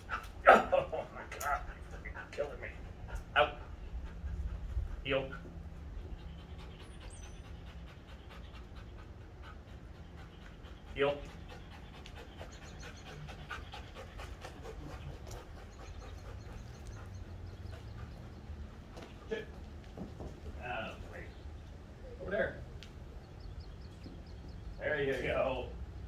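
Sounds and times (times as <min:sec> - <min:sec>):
dog panting: 0:00.0 - 0:24.8.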